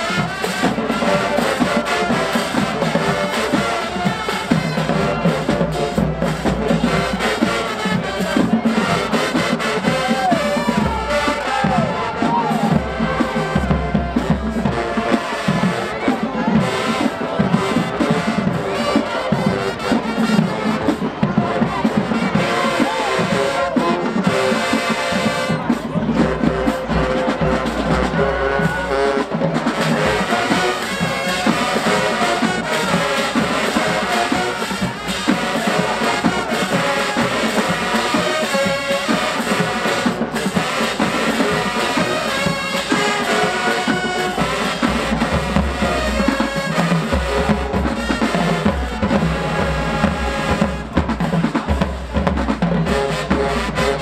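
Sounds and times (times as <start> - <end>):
brass section with sousaphones: 0.0 - 54.0
marching band playing: 0.0 - 54.0
snare and bass drums: 0.0 - 54.0.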